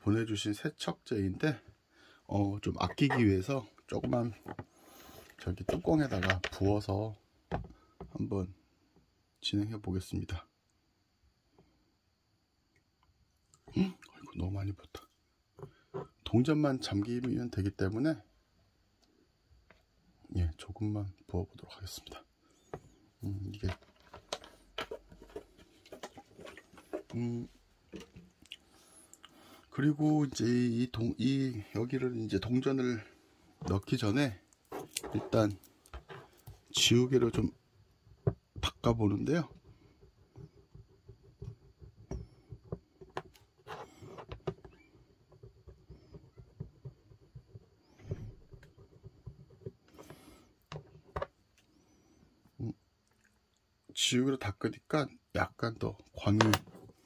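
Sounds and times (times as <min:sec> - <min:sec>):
faint clicks and handling noises: 0:03.8 - 0:06.6, 0:22.6 - 0:29.7.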